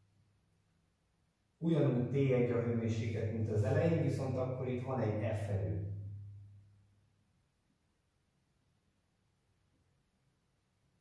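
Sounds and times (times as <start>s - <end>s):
man's voice: 1.6s - 5.8s.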